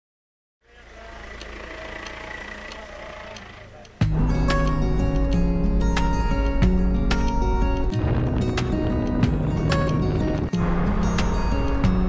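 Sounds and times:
car engine and road rumble: 0:00.6 - 0:12.0
faint ticks: 0:00.9 - 0:04.1.

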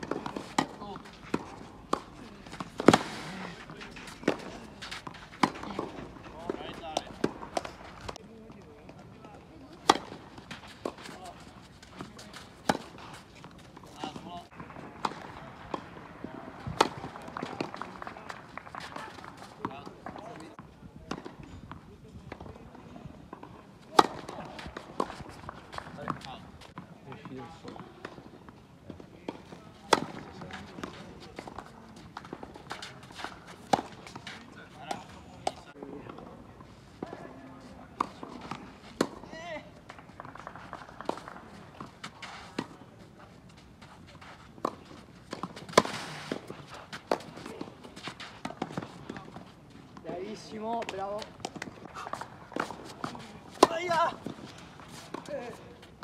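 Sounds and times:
tennis ball struck by racquets: 0:00.0 - 0:08.2, 0:09.8 - 0:20.4, 0:23.4 - 0:27.2, 0:29.3 - 0:36.3, 0:38.0 - 0:43.5, 0:44.2 - 0:56.0.

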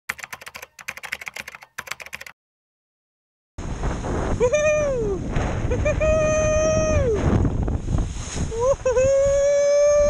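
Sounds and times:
keyboard key clicks: 0:00.1 - 0:02.4.

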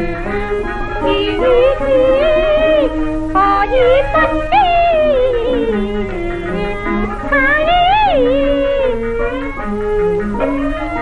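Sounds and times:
opera singing on gramophone: 0:00.0 - 0:11.0
small band accompaniment: 0:00.0 - 0:11.0.

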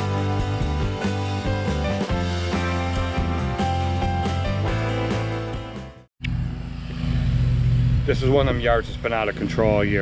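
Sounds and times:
background music: 0:00.0 - 0:06.1
low engine hum: 0:06.2 - 0:10.0.

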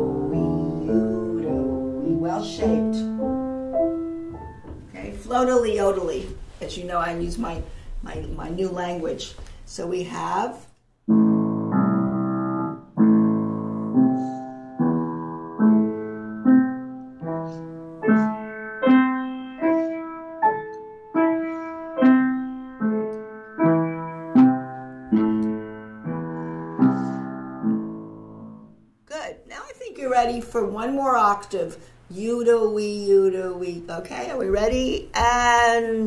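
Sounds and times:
piano arpeggio: 0:00.0 - 0:05.2, 0:11.1 - 0:28.8.

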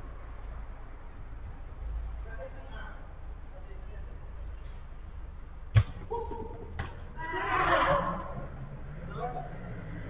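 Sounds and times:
football being kicked: 0:05.7 - 0:06.1
players shouting: 0:06.0 - 0:08.6.

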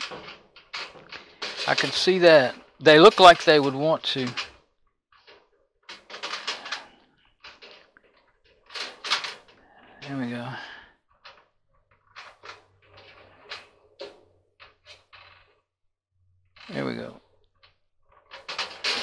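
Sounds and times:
metal rattles and scrapes: 0:00.0 - 0:15.7, 0:16.5 - 0:19.0.

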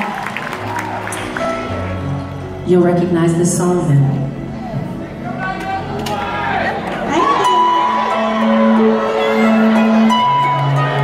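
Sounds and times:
live band playing softly: 0:05.9 - 0:11.0.

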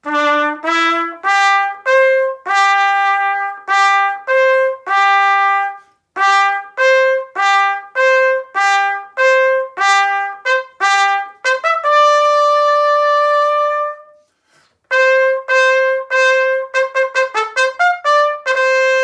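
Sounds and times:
solo trumpet playing: 0:00.0 - 0:19.0.

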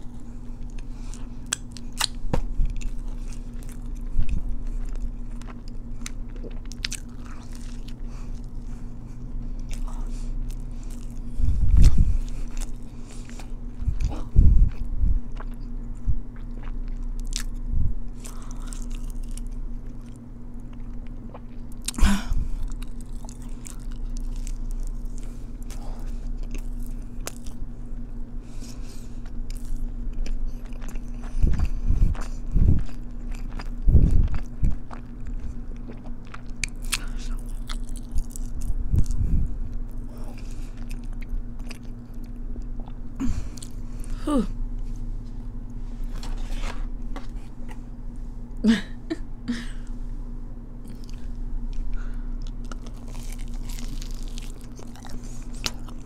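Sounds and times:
biting and chewing food: 0:00.0 - 0:27.7, 0:28.5 - 0:44.2, 0:50.8 - 0:56.0
steady low hum: 0:00.0 - 0:56.0.

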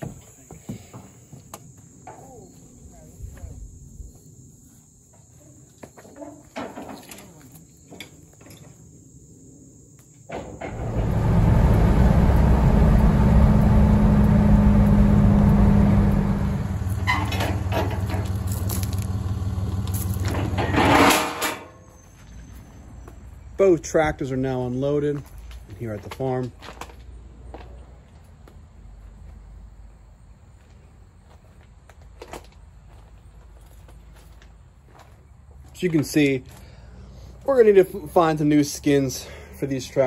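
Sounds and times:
rattles in vehicle: 0:10.3 - 0:22.5
engine and road drone in car cabin: 0:10.6 - 0:21.1.

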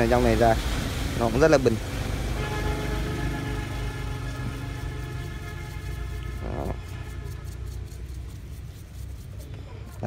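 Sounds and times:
small brush scrubbing: 0:03.2 - 0:10.0.

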